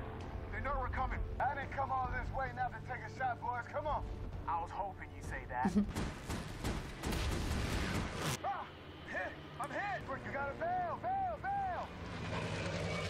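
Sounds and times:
gunfire: 5.9 - 8.4.

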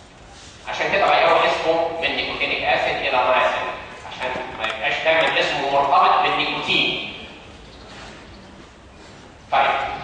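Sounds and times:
man speaking loudly: 0.7 - 7.2, 9.5 - 10.0.

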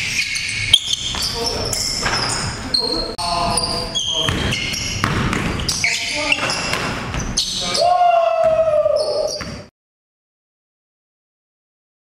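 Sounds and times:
basketball bouncing on gym floor: 0.8 - 2.5, 4.0 - 7.5, 8.4 - 9.7.

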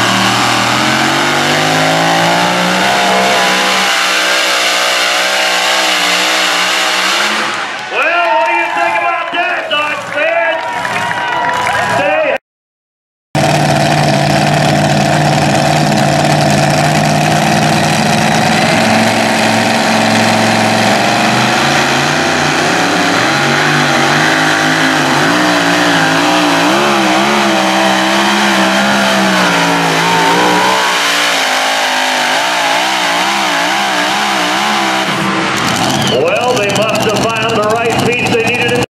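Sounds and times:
truck engine running hard: 0.0 - 10.1, 13.4 - 38.9.

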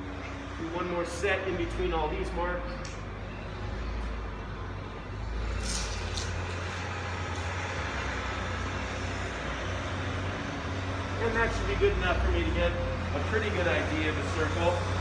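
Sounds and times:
low mechanical engine rumble: 0.0 - 15.0.

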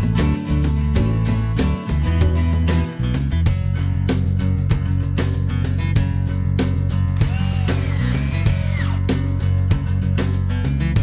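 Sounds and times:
cordless drill into wood: 7.2 - 9.0.

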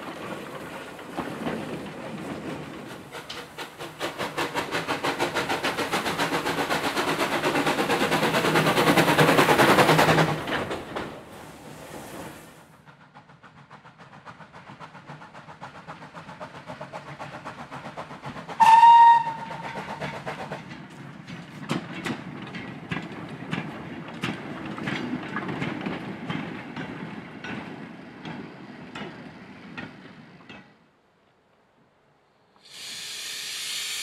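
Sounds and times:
steam locomotive exhaust beats: 2.3 - 11.8, 12.6 - 30.6
steam whistle blast: 18.6 - 19.8.

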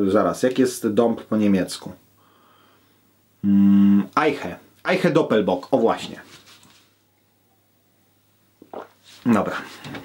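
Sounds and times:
man humming a drawn-out vowel: 3.4 - 4.2.

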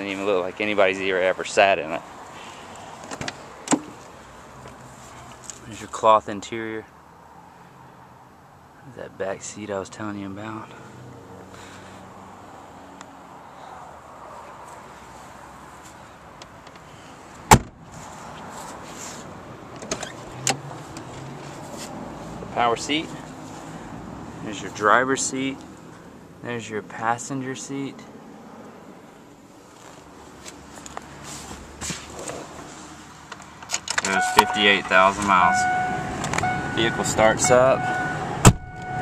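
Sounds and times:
car door shutting thump: 17.5 - 17.8, 38.4 - 38.6.

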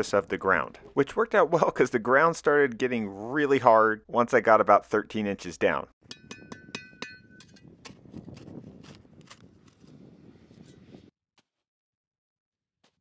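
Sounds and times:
shovel scraping through dirt: 7.4 - 11.6.

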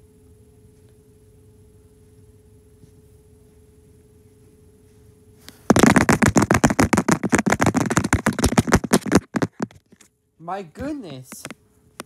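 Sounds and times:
loud rapid pulses: 5.7 - 9.7.

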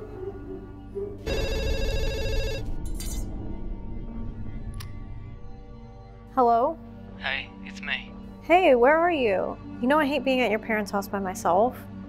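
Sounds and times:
low background music: 0.0 - 12.0
telephone ringing electronic trill: 1.3 - 2.8.

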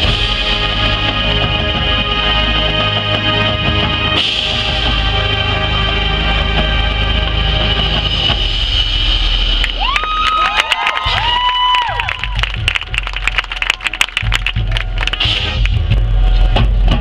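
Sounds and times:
marching band chords: 0.0 - 10.0, 11.0 - 17.0.

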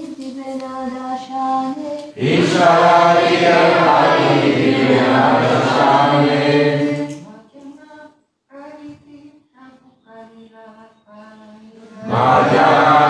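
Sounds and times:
group singing in unison: 2.2 - 7.3, 11.9 - 13.0.

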